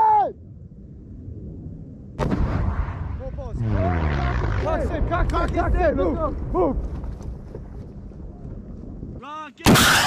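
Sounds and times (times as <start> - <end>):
rocket launcher blast: 2.2 - 3.4, 9.6 - 10.0.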